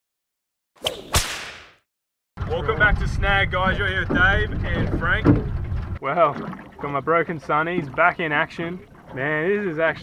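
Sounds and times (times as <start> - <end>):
whip crack: 0.8 - 1.9.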